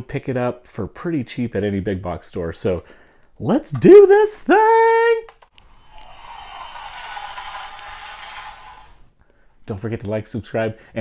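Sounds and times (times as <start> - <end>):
whooshing hiss: 5.6 - 9.1.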